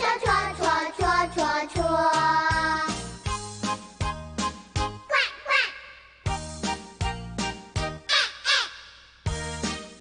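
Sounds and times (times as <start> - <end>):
bouncy children's song music: 0.0 - 10.0
goose-like honks: 8.1 - 8.8.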